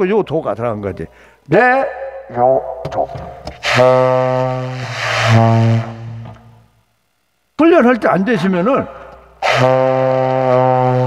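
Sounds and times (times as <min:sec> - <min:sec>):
saxophone holding low note: 0:02.4 - 0:06.4, 0:09.4 - 0:11.0.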